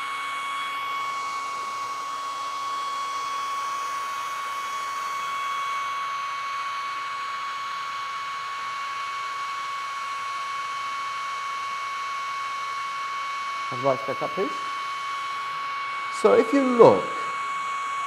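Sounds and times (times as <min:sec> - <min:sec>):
hair dryer running: 0:00.0 - 0:18.0.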